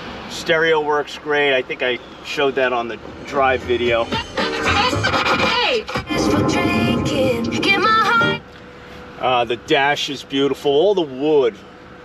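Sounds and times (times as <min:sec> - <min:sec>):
radio music on car stereo: 0:01.8 - 0:08.4.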